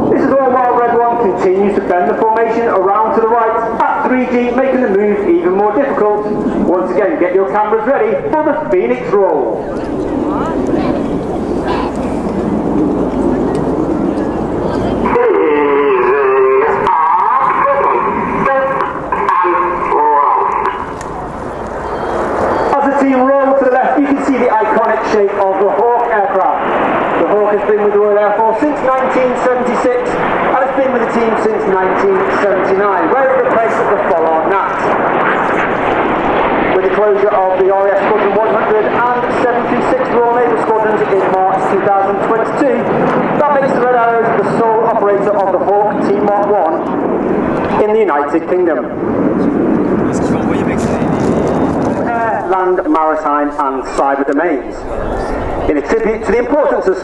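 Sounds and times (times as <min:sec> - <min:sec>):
steady rushing noise: 0:00.0 - 0:57.0
indistinct voices: 0:08.9 - 0:26.6, 0:49.4 - 0:57.0.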